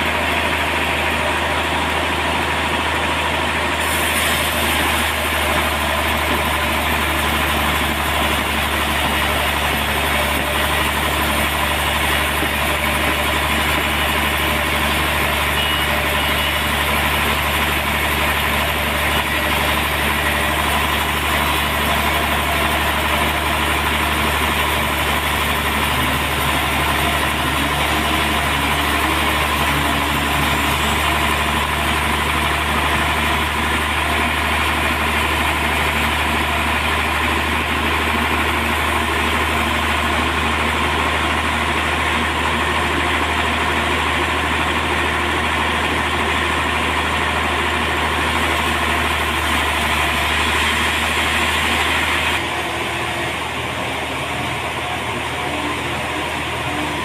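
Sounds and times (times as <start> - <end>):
band saw cutting log: 0.0 - 57.0.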